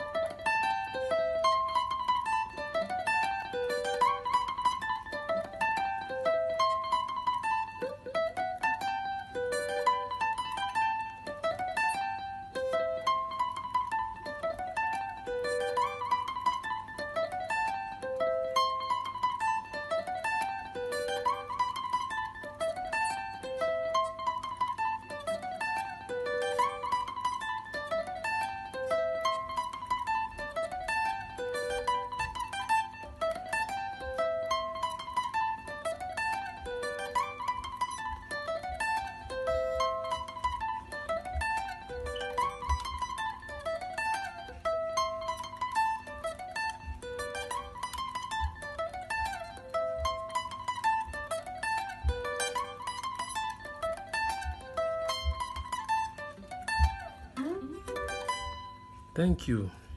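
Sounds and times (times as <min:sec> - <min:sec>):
electric guitar fingerpicked runs: 0:00.0 - 0:59.9.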